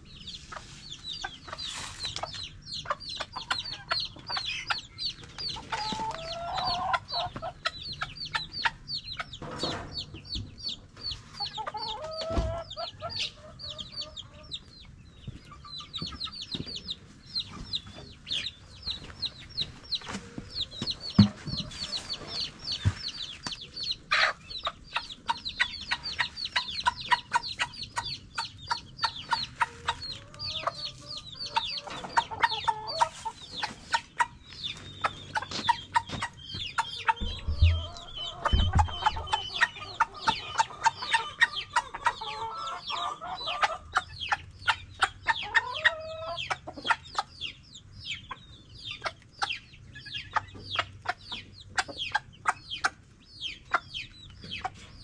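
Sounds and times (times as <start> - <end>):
chicks peeping: 0.0 - 55.0
hens clucking: 0.0 - 55.0
sharp knocks: 37.2 - 39.3.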